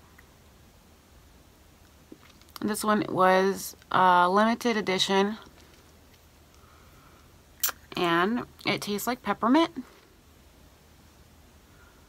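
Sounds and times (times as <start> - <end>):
person talking: 7.9 - 9.9.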